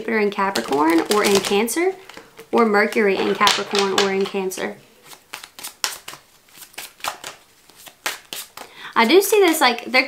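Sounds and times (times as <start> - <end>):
cards being shuffled: 0.6 - 9.7.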